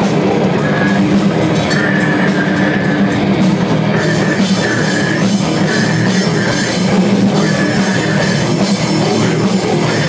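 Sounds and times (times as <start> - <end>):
metal band playing live: 0.0 - 10.0.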